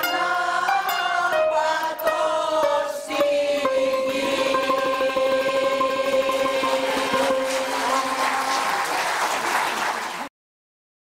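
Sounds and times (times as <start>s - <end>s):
mixed choir holding a chord: 0.0s - 9.3s
audience applause: 6.6s - 10.3s.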